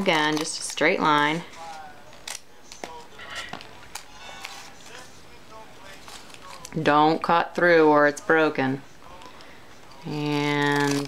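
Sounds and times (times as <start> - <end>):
scissors snipping paper: 9.1 - 11.0.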